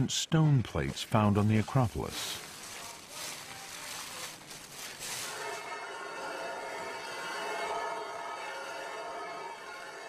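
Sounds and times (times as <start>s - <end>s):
sand pouring hiss: 1.1s - 5.4s.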